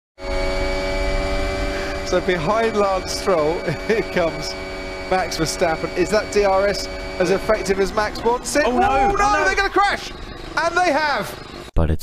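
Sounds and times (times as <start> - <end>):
racing car engine: 0.2 - 11.7.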